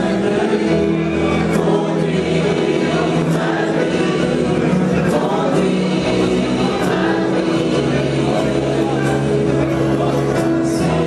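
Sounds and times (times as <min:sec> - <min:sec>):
gospel choir singing: 0:00.0 - 0:11.0
instrumental accompaniment: 0:00.0 - 0:11.0.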